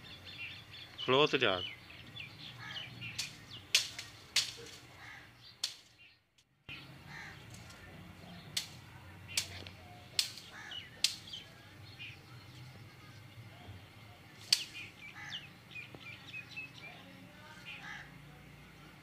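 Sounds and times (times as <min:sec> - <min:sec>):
small birds chirping: 0:00.0 - 0:19.0
sharp clicks: 0:03.1 - 0:04.9, 0:05.6 - 0:06.5, 0:08.5 - 0:11.4, 0:14.5 - 0:14.9.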